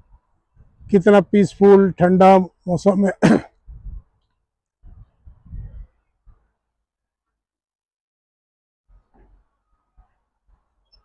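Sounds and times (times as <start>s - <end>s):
man speaking: 0.9s - 3.5s
throat clearing: 3.2s - 3.6s.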